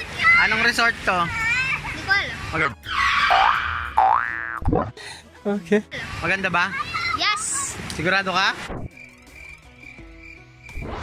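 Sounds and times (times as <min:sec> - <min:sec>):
cartoon rising pitch glide effect: 0:02.8 - 0:04.6.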